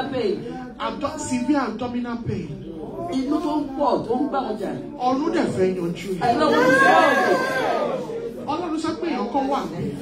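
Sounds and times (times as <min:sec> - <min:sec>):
overlapping voices praying: 0:06.0 - 0:08.5.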